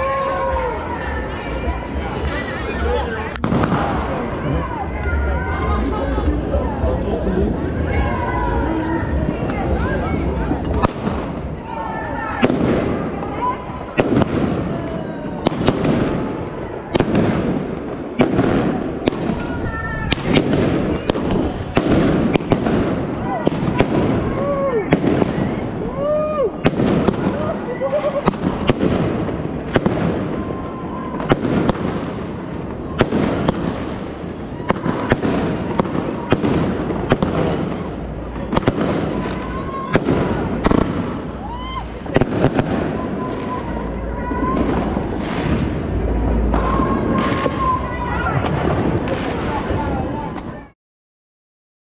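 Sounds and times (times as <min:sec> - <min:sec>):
firecrackers banging: 0:00.0 - 0:50.7
murmur of voices: 0:00.0 - 0:50.8.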